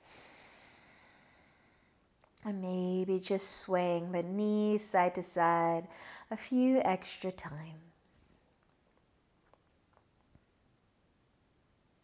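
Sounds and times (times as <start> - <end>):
soft breathy exhale: 0.0 - 2.0.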